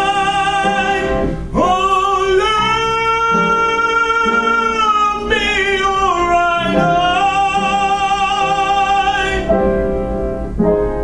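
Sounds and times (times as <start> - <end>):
man singing with vibrato: 0.0 - 9.9
musical accompaniment: 0.0 - 11.0.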